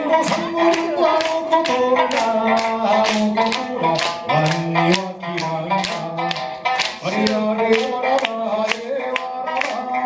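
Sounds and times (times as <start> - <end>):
man singing: 0.0 - 10.0
plucked lute rhythm: 0.0 - 10.0.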